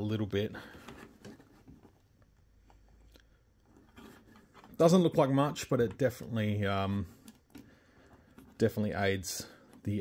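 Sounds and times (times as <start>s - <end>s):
faint plastic taps and rustles: 0.6s - 10.0s.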